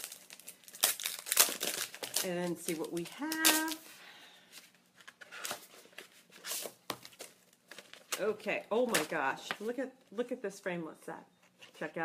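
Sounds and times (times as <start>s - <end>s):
packaging crinkling and rustling: 0.0s - 3.9s, 4.6s - 9.7s.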